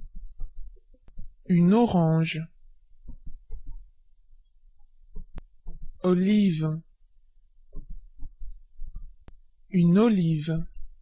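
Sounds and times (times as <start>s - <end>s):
soft low thuds: 0.0s - 1.7s, 2.5s - 6.2s, 6.8s - 9.7s, 10.5s - 11.0s
steady low hum: 0.0s - 11.0s.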